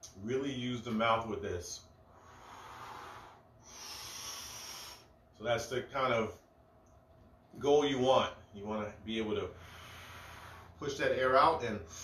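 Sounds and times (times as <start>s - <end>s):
man breathing hard: 2.1s - 5.2s, 9.6s - 10.8s.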